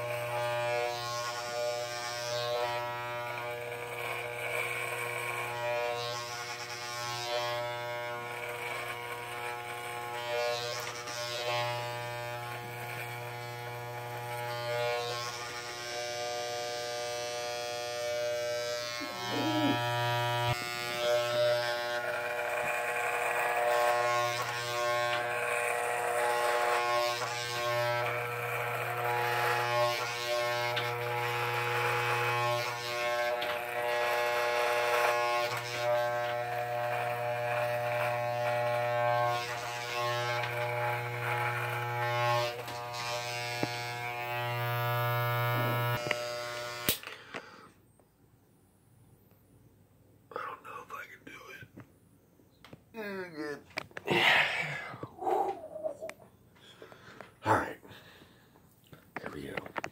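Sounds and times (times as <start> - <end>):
electric hair clippers buzzing: 0.0 - 47.7.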